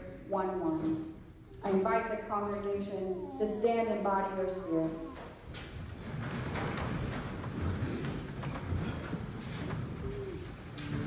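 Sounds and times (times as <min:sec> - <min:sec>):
people shuffling: 0:04.4 - 0:11.0.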